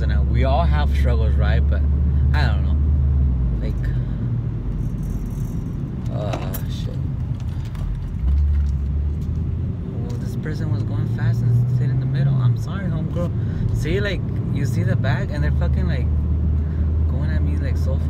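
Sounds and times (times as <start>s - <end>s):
car engine rumble: 0.0s - 18.0s
road noise inside car: 0.0s - 18.0s.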